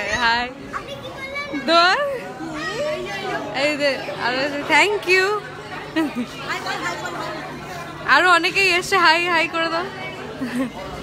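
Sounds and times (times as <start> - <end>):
background chatter: 0.0 - 11.0
people talking and calling out: 0.0 - 11.0.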